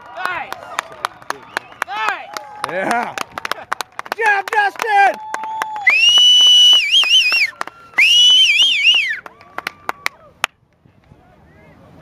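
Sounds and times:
loud high whistles: 5.8s - 9.2s.

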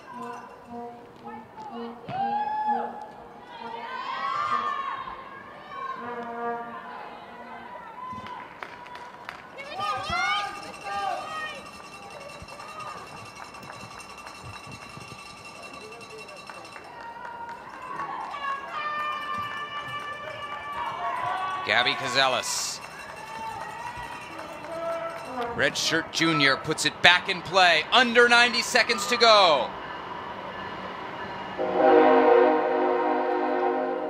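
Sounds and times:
crowd shouting: 16.9s - 26.0s, 27.3s - 29.8s
steady high-pitched tone: 27.9s - 34.0s.

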